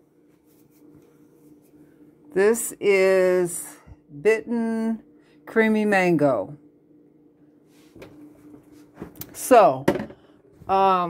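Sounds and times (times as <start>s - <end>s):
faint steady hum: 0.0s - 11.0s
soft rustling of bottle: 0.2s - 2.0s.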